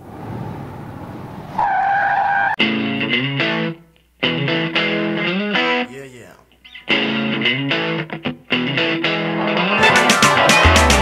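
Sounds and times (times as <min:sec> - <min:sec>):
car engine rumble: 0:00.0 - 0:01.6
tire squeal: 0:00.1 - 0:02.6.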